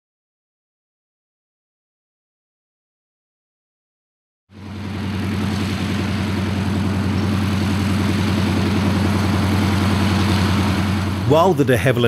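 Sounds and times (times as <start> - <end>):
propeller aircraft engine throbbing: 4.5 - 12.0.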